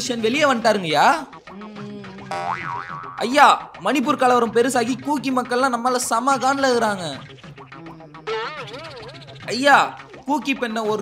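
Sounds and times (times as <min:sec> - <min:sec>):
comedy boing sound effect: 0:01.5 - 0:03.4, 0:07.6 - 0:09.6.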